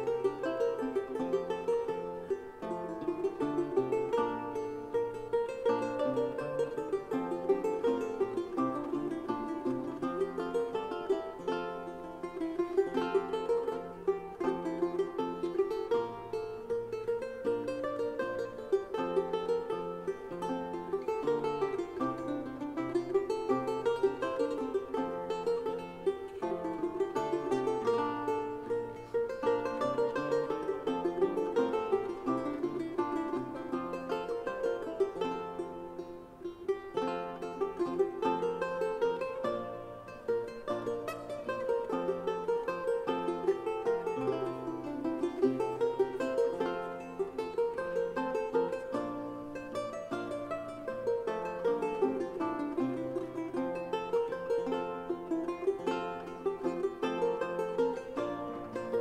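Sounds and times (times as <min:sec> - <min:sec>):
viols playing melody: 0:00.0 - 0:12.2
plucked lute notes: 0:00.0 - 0:59.0.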